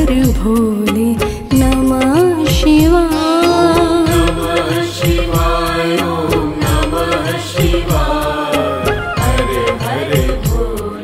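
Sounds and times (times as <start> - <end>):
drum beat with bass thumps: 0.0 - 11.0
chant-like singing: 3.1 - 11.0.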